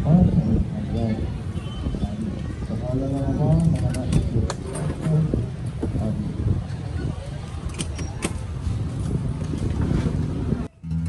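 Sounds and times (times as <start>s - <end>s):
low rumble of motor vehicles: 0.0s - 11.0s.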